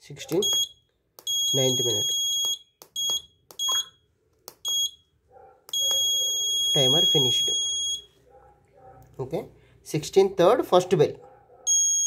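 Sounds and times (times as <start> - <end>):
electronic buzzer beeps: 0.4 - 4.0, 5.7 - 8.1, 11.7 - 12.0
long steady beep: 0.4 - 4.0, 4.6 - 5.1, 5.7 - 8.2, 11.7 - 12.0.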